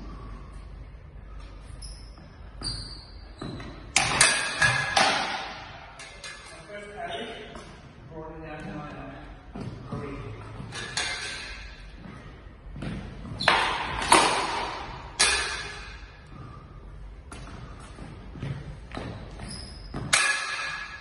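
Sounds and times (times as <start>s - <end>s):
swords clashing with metallic ring: 14.0s - 16.0s, 20.1s - 21.0s.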